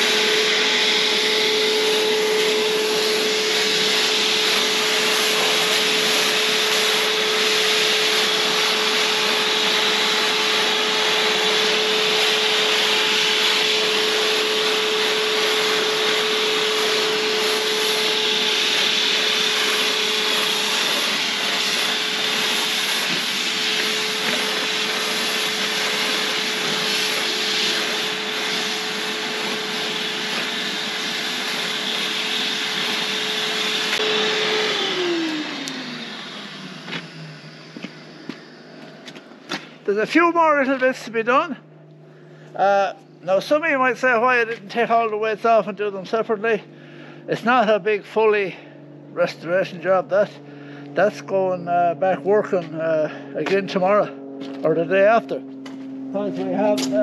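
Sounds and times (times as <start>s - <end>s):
paint sprayer turbine hissing: 0.0s - 57.0s.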